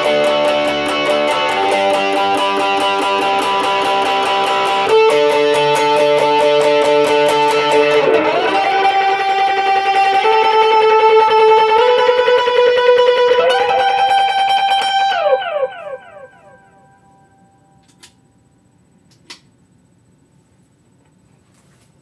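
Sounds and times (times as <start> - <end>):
electric guitar lead with slides: 0.0 - 17.4.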